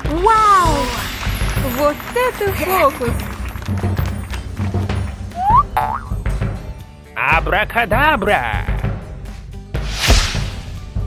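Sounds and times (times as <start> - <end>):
cartoon music with low beat: 4.7 - 11.0
rising cartoon boing effect: 5.4 - 6.1.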